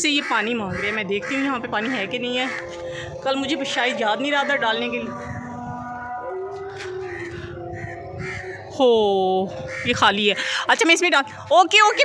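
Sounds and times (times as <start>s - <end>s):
crows cawing: 0.0s - 5.6s, 6.6s - 8.8s, 9.4s - 10.8s.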